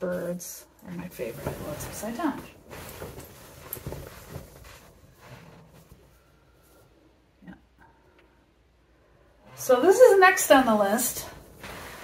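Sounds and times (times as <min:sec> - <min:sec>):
quilt rustling: 0:00.0 - 0:06.9, 0:09.5 - 0:12.0.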